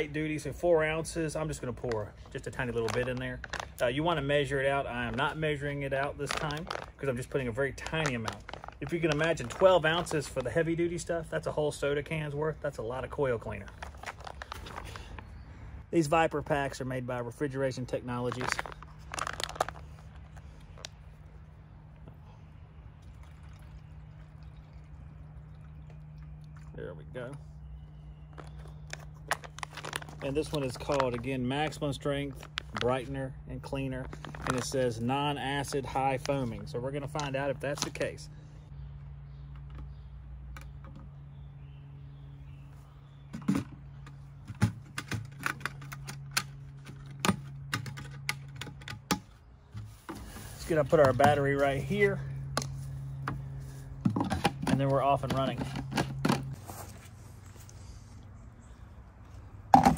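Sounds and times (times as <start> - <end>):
liquid trickling into plastic tank: 22.7 - 27.2.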